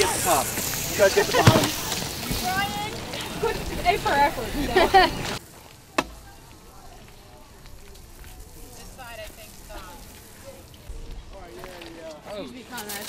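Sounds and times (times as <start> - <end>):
steady low hiss: 0.0 - 12.2
distant chatter of people: 0.0 - 13.0.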